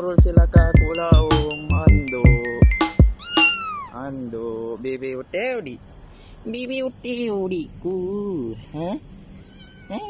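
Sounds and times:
cat meowing: 3.1s - 4.0s, 9.3s - 10.0s.

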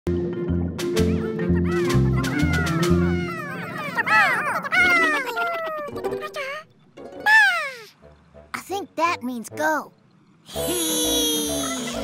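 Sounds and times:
squeaky cartoon creature calls: 1.6s - 8.0s.

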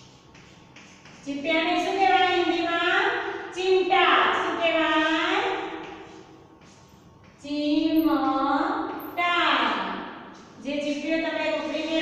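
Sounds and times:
chalk scratching on blackboard: 0.0s - 2.7s, 5.6s - 7.4s.

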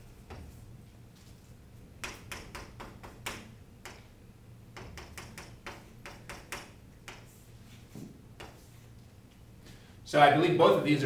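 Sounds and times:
chalk tapping on chalkboard: 2.0s - 4.1s, 4.8s - 8.8s.

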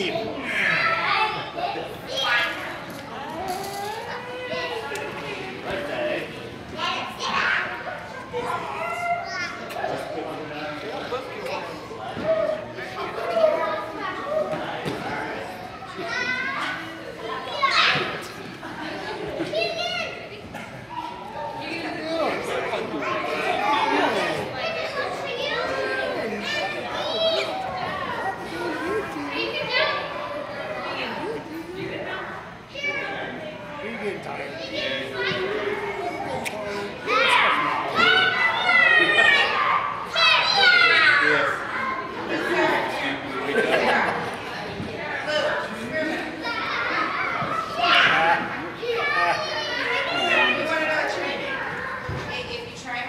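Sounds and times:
children chattering in echoing hall: 0.0s - 53.0s
child shouting: 37.1s - 41.3s.

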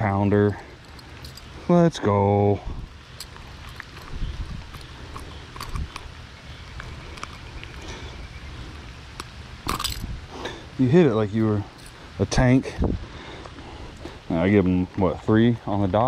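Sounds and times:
steady low background noise: 0.0s - 16.0s
faint handling clicks: 6.8s - 7.8s.

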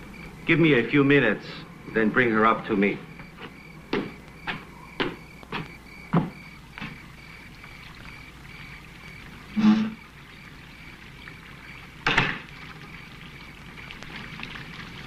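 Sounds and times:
crickets chirping: 0.0s - 15.0s
footsteps on brick paving: 3.4s - 7.0s.

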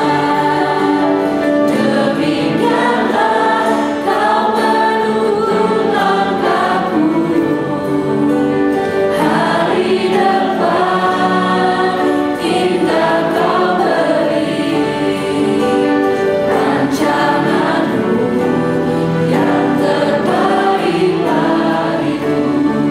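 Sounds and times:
piano: 0.0s - 22.9s
worship singers singing a hymn: 0.0s - 22.9s.

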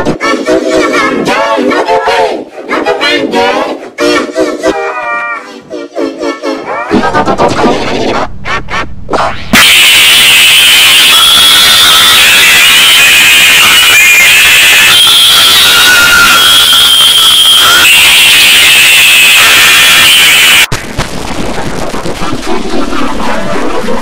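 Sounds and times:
shrill distorted tones: 6.6s - 24.0s.

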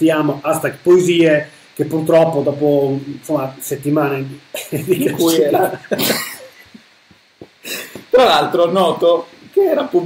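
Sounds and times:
men laughing under their breath: 4.6s - 6.8s, 7.6s - 8.1s.

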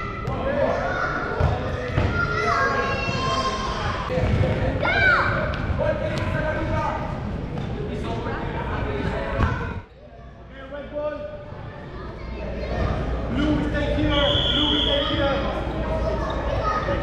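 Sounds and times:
children shouting and squealing: 0.0s - 4.1s, 14.6s - 17.0s.

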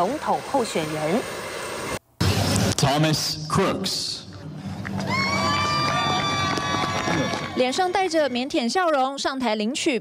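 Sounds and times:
high-pitched cheering whoop: 5.0s - 7.6s.

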